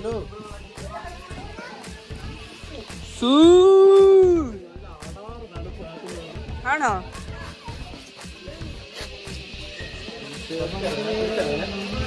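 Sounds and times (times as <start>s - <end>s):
faint background music: 0.0s - 12.0s
people chattering: 0.0s - 12.0s
child's voice: 0.8s - 2.7s, 7.0s - 8.6s.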